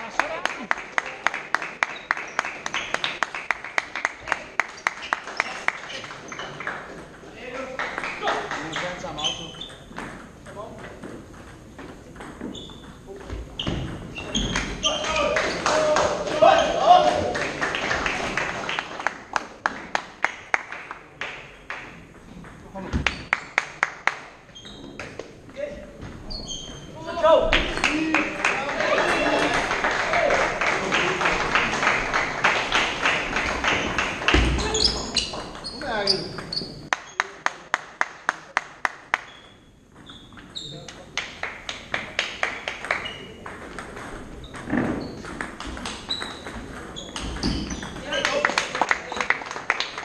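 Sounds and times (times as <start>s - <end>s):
table tennis balls clicking: 41.2s - 48.3s.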